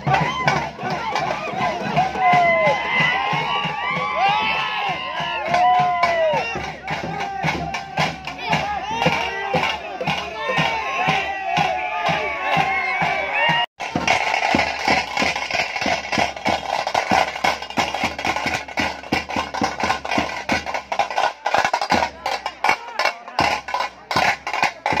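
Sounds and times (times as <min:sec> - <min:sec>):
fast loud drumming: 0:00.0 - 0:25.0.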